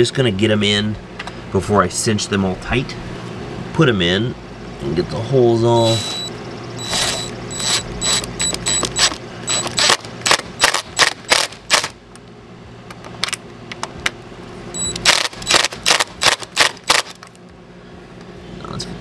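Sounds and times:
impact driver hammering: 0:05.8 - 0:11.4.

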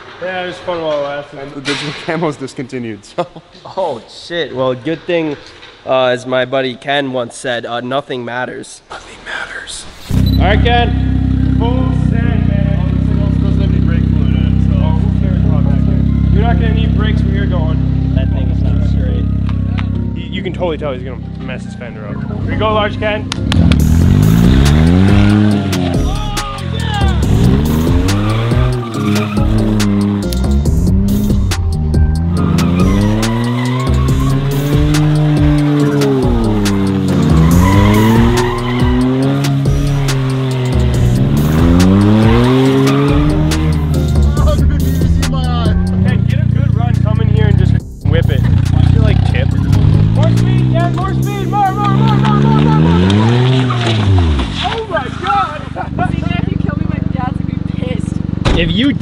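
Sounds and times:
small car engine revving: 0:23.3 - 0:46.1, 0:48.4 - 0:54.7.

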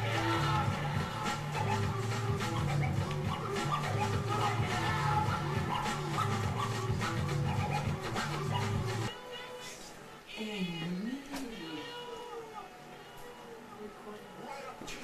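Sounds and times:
music with bass line: 0:00.0 - 0:09.1.

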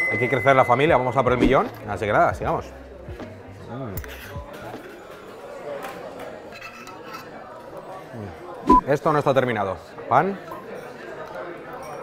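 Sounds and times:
background music: 0:00.0 - 0:04.6
murmur of crowded bar: 0:00.0 - 0:12.0.

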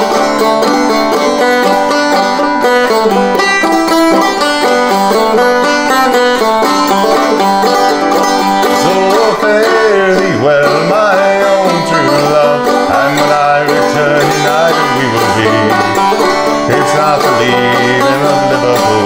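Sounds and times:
banjo playing: 0:00.0 - 0:19.0.

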